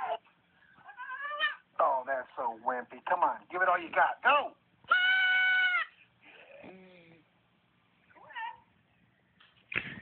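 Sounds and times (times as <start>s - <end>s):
cat meowing: 0.8s - 1.6s, 4.9s - 5.9s.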